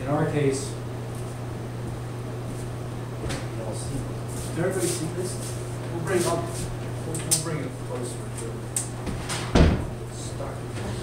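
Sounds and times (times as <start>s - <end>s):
steady low hum: 0.0s - 11.0s
wooden board thump: 9.1s - 9.9s.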